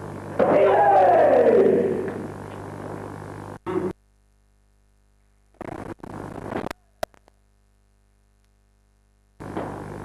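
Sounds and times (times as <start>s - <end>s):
low tape hum: 0.0s - 10.0s
loud kiai shout: 0.4s - 2.2s.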